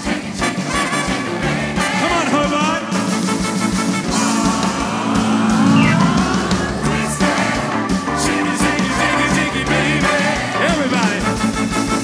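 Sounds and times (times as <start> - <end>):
live band and gospel choir: 0.0 - 12.0.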